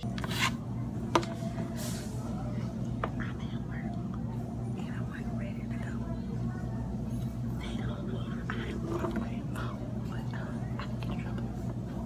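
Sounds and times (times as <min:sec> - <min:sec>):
steady low hum: 0:00.0 - 0:12.0
soft indistinct speech: 0:00.6 - 0:12.0.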